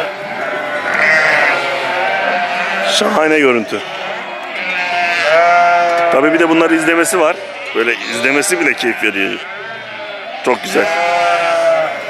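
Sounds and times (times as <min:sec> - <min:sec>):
sheep bleating: 0:00.0 - 0:12.0.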